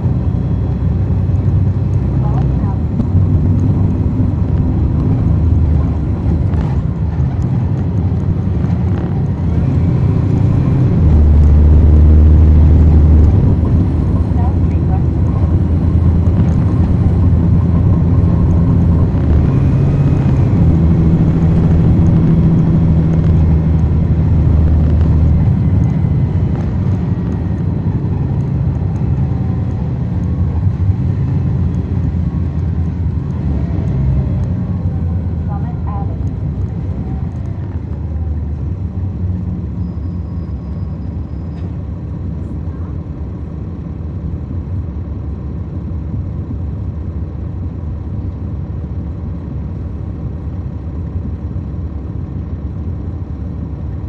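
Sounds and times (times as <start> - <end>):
bus diesel engine droning: 0.0 - 54.0.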